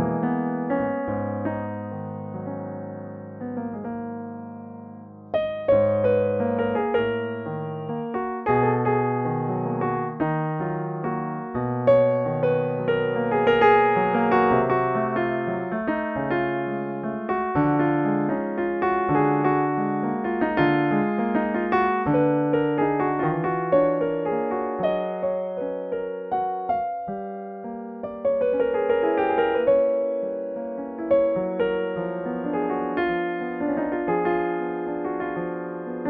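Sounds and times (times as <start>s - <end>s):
solo piano piece: 0.0s - 36.0s.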